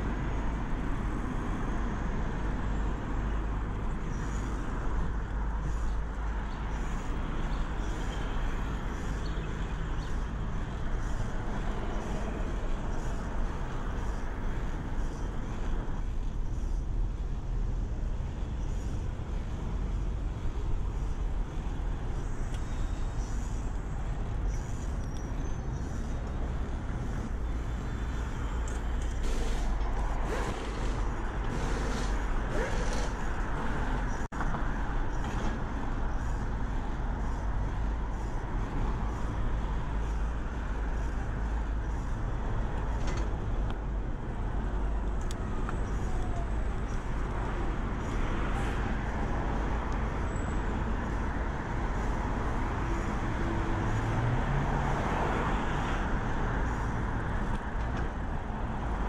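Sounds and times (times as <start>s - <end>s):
constant low rumble: 0.0s - 54.2s
road traffic passing: 0.0s - 59.0s.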